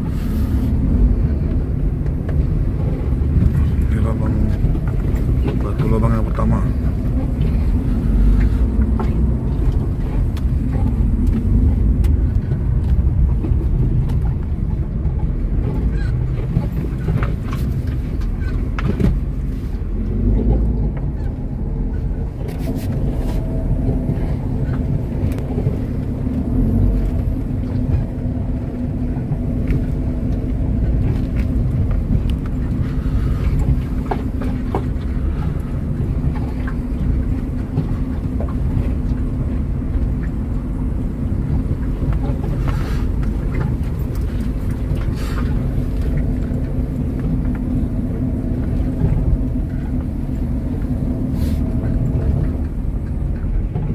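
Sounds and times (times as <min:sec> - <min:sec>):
car engine and tyres rumbling: 0:00.0 - 0:53.9.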